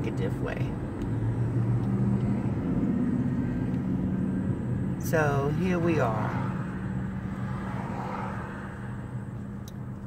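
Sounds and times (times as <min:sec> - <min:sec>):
car engine and tyres hum: 0:00.0 - 0:10.0.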